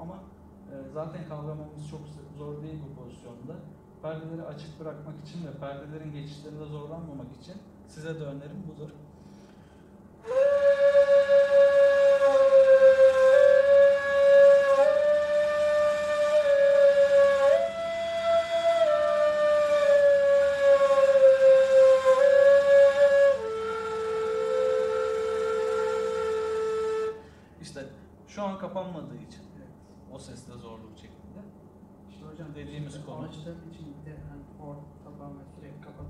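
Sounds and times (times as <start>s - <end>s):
reed flutes playing: 10.2s - 27.4s.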